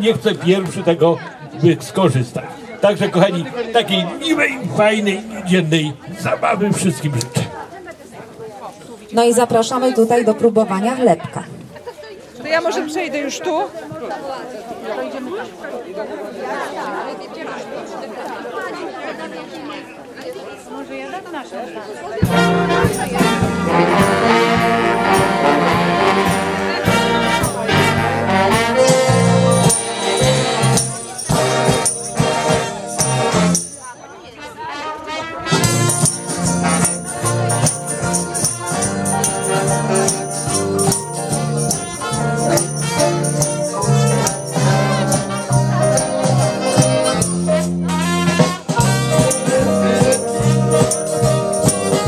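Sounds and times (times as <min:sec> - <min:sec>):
voices chattering: 0:00.0 - 0:52.0
swing big band playing: 0:22.2 - 0:33.9, 0:34.6 - 0:52.0.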